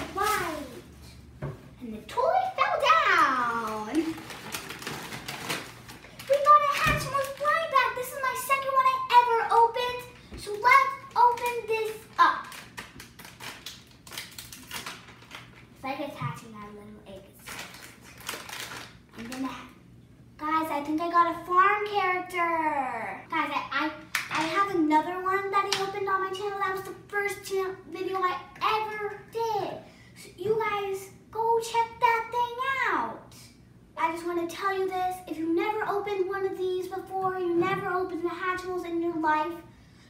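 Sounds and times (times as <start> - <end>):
packet crinkling and tearing: 3.5 - 7.7, 11.1 - 15.7, 17.4 - 19.5.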